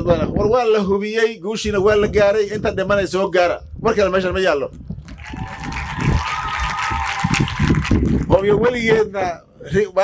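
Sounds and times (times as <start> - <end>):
audience applauding: 5.1 - 8.4.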